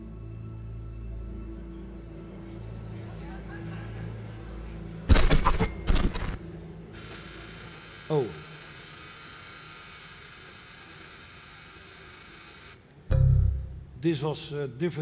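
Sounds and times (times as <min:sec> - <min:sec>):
static hiss: 0:07.0 - 0:12.9
loud low noise burst: 0:13.1 - 0:14.0.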